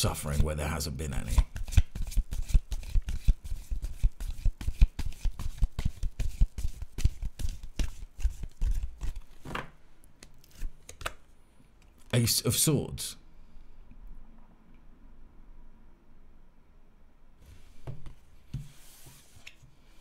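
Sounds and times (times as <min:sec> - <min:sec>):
cards being shuffled: 0:01.2 - 0:09.6, 0:10.2 - 0:11.2.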